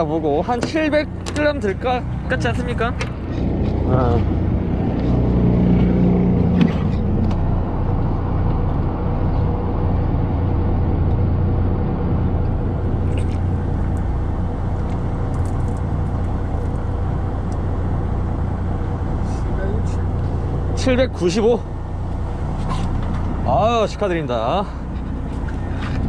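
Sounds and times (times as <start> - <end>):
boat engine humming: 0.0 - 26.0.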